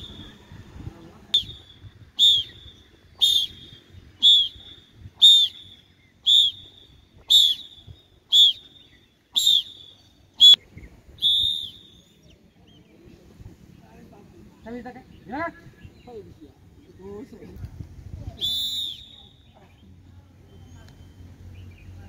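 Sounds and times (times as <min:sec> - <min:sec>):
whistle blasts: 0:00.0 - 0:00.5, 0:01.3 - 0:10.6, 0:11.2 - 0:12.2, 0:18.4 - 0:19.6.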